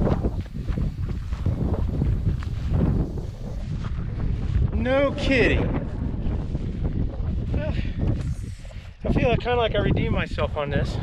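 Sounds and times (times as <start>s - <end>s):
footsteps through dry grass: 0.0s - 9.3s
wind buffeting microphone: 0.0s - 11.0s.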